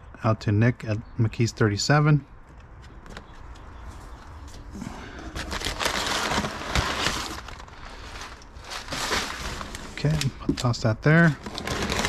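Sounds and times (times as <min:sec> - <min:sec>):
packing paper rustling: 0:05.0 - 0:12.0.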